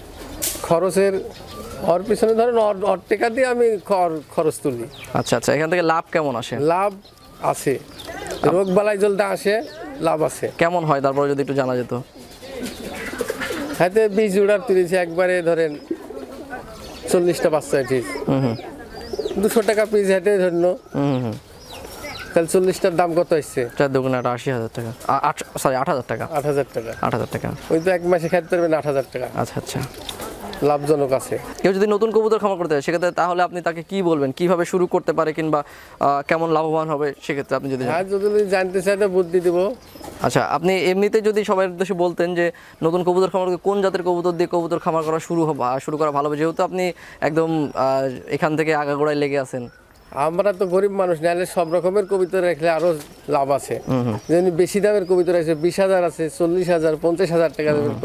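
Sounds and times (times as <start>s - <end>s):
pigeons cooing: 0.0s - 58.0s
man talking: 0.6s - 12.7s, 13.7s - 18.6s, 19.3s - 21.5s, 22.3s - 30.0s, 30.6s - 58.0s.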